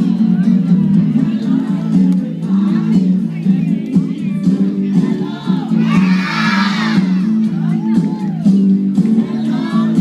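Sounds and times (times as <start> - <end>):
children cheering and shouting: 5.2 - 8.6.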